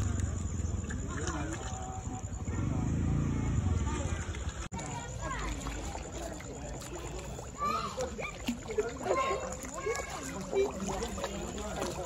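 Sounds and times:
moving water: 0:00.0 - 0:12.0
people chattering: 0:00.0 - 0:12.0.

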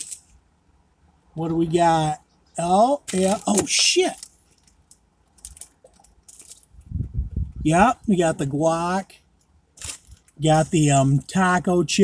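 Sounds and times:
paper wrapper crinkling: 0:00.0 - 0:00.3, 0:02.9 - 0:06.8, 0:09.7 - 0:10.9.

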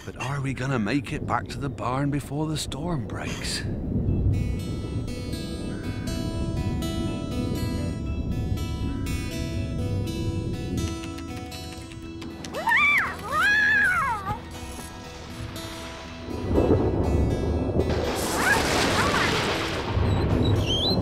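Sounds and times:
background music: 0:03.9 - 0:21.0.

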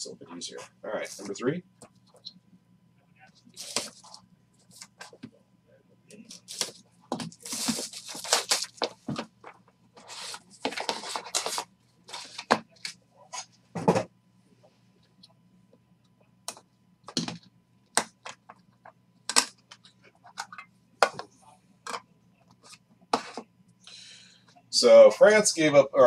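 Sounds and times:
plastic wrap tearing and crinkling: 0:07.4 - 0:08.9.

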